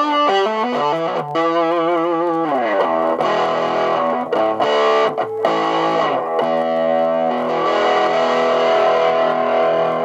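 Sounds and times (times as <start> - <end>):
distorted electric guitar chords: 0.0 - 10.0.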